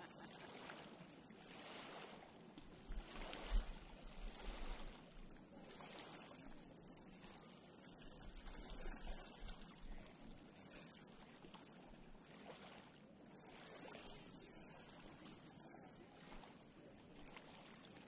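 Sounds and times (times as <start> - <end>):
waves lapping on a shore: 0.0 - 18.0
wind rumble on microphone: 2.8 - 5.2.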